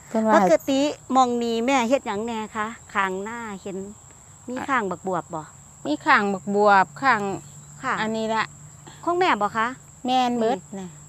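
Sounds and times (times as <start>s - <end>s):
high-pitched insect drone: 0.0s - 11.0s
woman talking: 0.1s - 11.0s.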